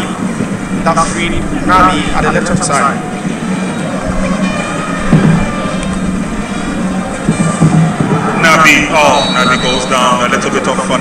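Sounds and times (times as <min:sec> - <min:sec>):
stadium crowd noise: 0:00.0 - 0:11.0
music: 0:03.2 - 0:10.1.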